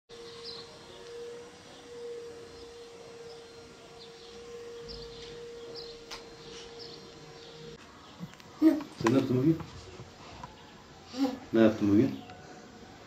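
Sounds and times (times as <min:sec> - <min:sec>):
steady tone: 0:00.1 - 0:07.8.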